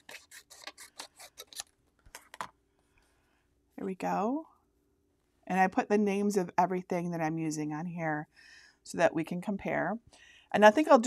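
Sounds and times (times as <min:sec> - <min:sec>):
scissors snipping paper: 0:00.0 - 0:02.3.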